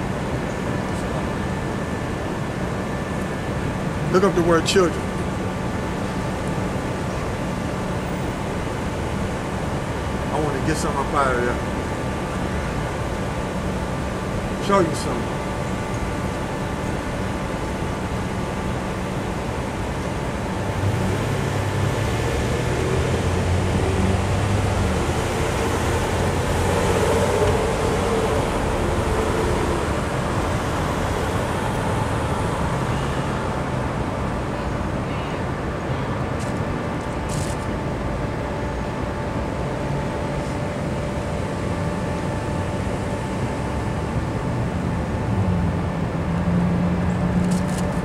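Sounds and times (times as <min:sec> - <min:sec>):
low engine drone: 0:00.0 - 0:48.0
street traffic noise: 0:00.0 - 0:48.0.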